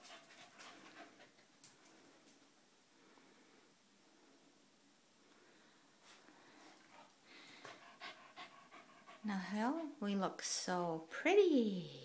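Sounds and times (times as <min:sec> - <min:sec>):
dog panting: 0:00.0 - 0:01.5, 0:06.5 - 0:10.0.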